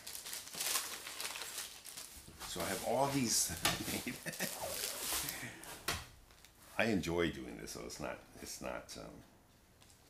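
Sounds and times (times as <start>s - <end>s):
paper rustling and sliding: 2.4s - 5.5s.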